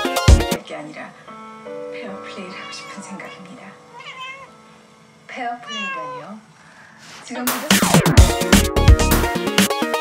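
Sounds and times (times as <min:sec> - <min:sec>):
television dialogue and music: 0:00.0 - 0:10.0
cat meowing: 0:02.5 - 0:04.6, 0:05.6 - 0:06.5.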